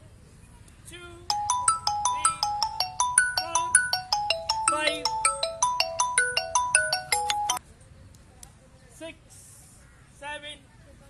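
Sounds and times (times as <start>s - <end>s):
mobile phone ringtone: 1.3s - 7.6s.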